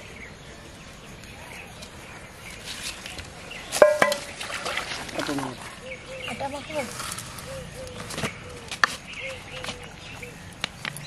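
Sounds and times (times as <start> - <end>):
metal plate clanking: 3.8 - 4.3.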